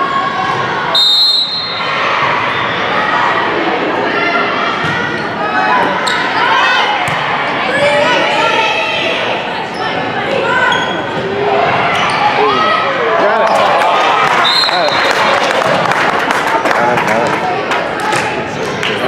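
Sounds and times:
players and spectators shouting: 0.0s - 15.5s.

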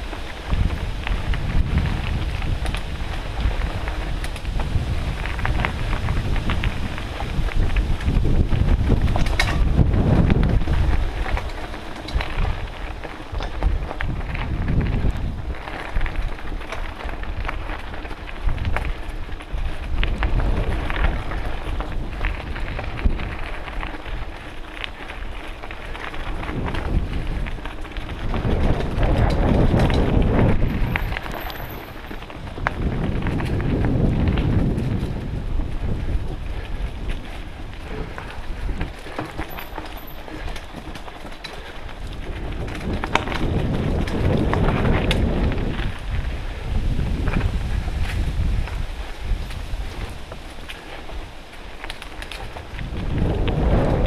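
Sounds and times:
bike clicks and rattles: 0.0s - 54.0s
wind buffeting microphone: 0.0s - 54.0s.

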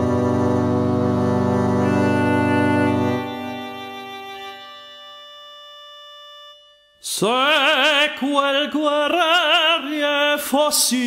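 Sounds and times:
instrumental sustained chord: 0.0s - 7.9s.

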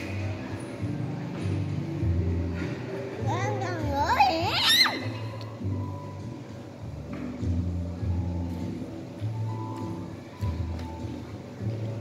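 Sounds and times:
background music: 0.0s - 12.0s
child's high voice: 3.2s - 5.1s.

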